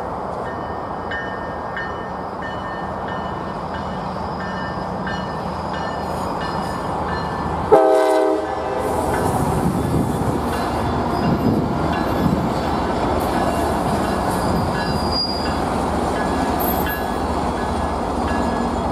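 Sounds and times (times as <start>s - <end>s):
train rumbling on rails: 0.0s - 18.9s
train horn blast: 7.7s - 9.3s.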